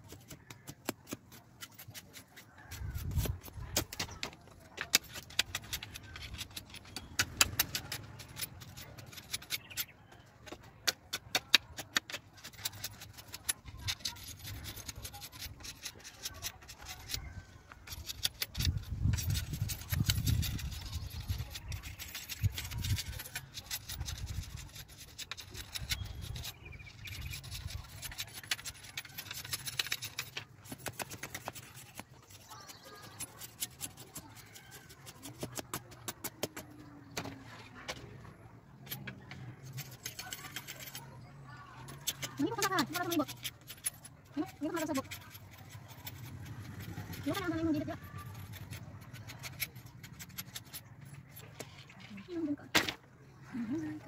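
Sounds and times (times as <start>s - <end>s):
bamboo cracking and scraping: 0.0s - 53.1s.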